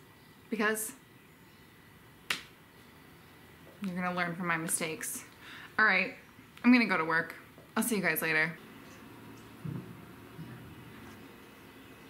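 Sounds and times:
finger snap: 0:02.3 - 0:02.5
woman speaking: 0:03.8 - 0:08.6.

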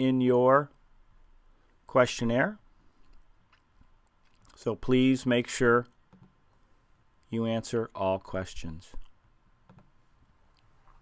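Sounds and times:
computer mouse clicks: 0:06.0 - 0:06.4, 0:09.0 - 0:09.9.

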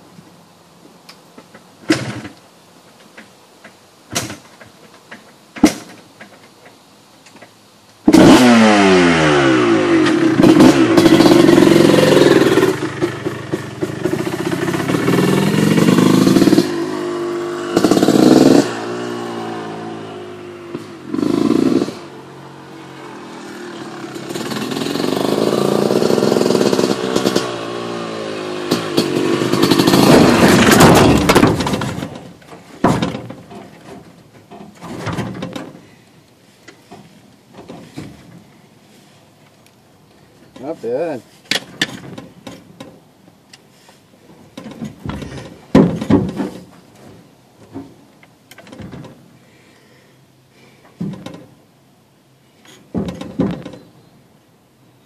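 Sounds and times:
motorcycle engine revving: 0:08.1 - 0:32.3
knocks: 0:30.0 - 0:35.8, 0:44.6 - 0:47.9, 0:52.9 - 0:53.8.

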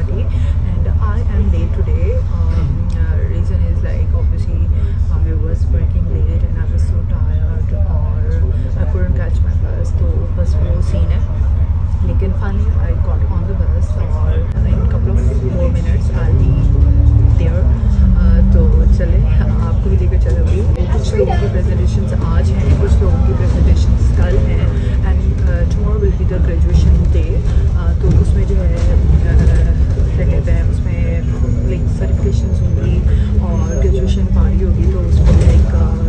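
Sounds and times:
bus engine and road rumble: 0:00.0 - 0:36.0.

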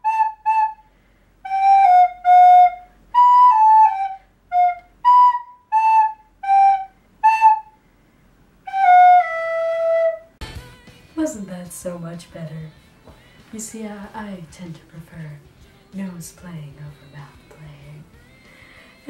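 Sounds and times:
nose-blown recorder melody: 0:00.0 - 0:00.8, 0:01.4 - 0:07.8, 0:08.6 - 0:10.4.

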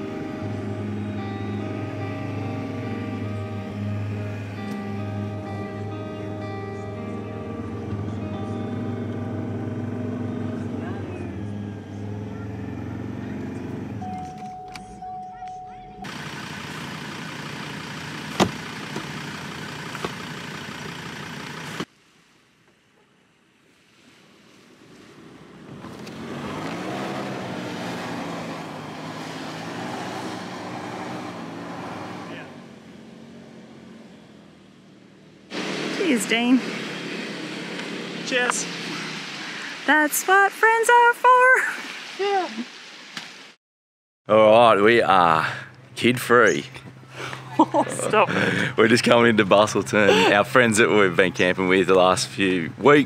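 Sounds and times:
vehicle engine under load: 0:07.3 - 0:14.7, 0:16.0 - 0:21.9, 0:24.7 - 0:39.4, 0:44.4 - 0:53.0.

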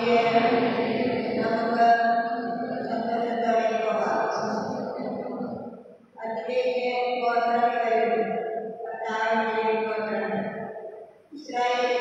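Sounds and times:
woman chanting: 0:00.0 - 0:05.6, 0:06.2 - 0:10.6, 0:11.4 - 0:12.0.

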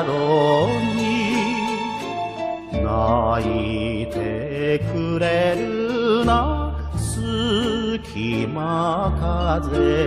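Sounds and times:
vocal melody with vibrato: 0:00.0 - 0:10.0
steady bass accompaniment: 0:00.3 - 0:05.6.

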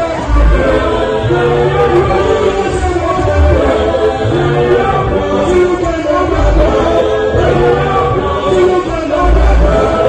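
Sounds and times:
gospel choir singing: 0:00.0 - 0:10.0
sustained low bass: 0:00.2 - 0:10.0.

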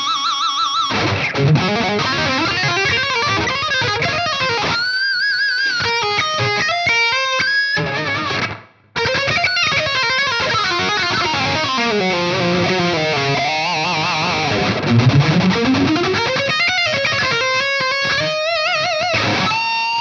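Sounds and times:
distorted electric guitar: 0:00.0 - 0:20.0.

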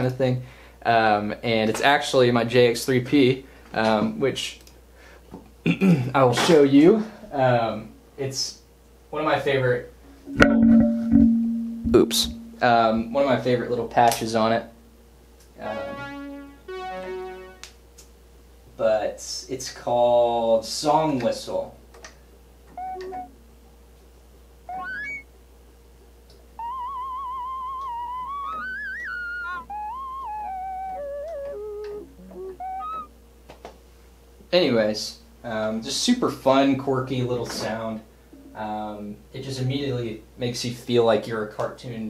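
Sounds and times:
low synthesizer note: 0:10.2 - 0:13.2, 0:15.6 - 0:17.7
whistle-like synthesizer melody: 0:15.7 - 0:17.7, 0:22.8 - 0:23.3, 0:24.7 - 0:25.2, 0:26.6 - 0:33.1.

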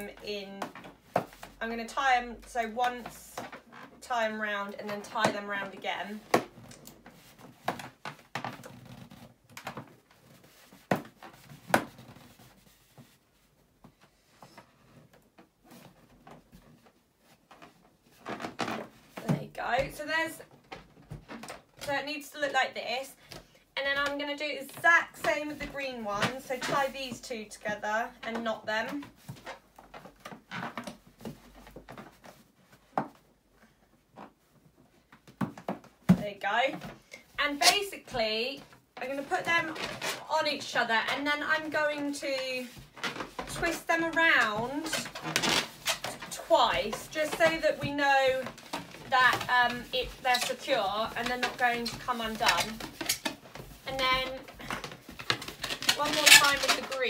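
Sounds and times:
rubber balloons clicking and rubbing: 0:00.0 - 0:57.0.

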